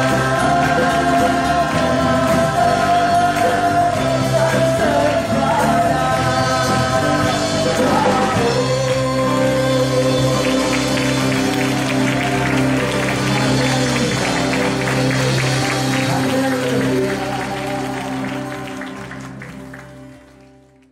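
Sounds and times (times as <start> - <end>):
worship band holding chord: 0.0 - 20.4
acoustic guitar: 0.0 - 20.9
applause: 0.0 - 20.9.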